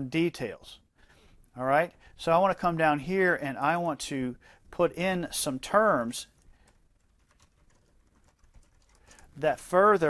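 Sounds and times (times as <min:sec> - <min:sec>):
typing on computer keyboard: 0:06.4 - 0:09.3.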